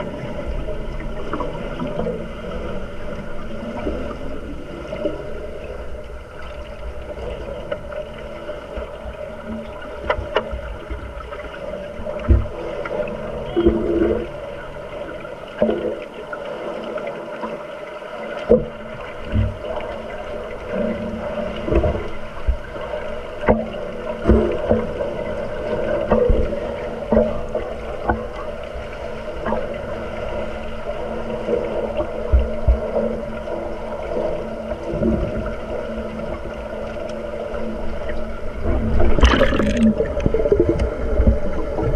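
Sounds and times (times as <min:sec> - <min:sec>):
steady underwater hum: 0:00.0 - 0:41.9
bubbling water: 0:38.0 - 0:41.9.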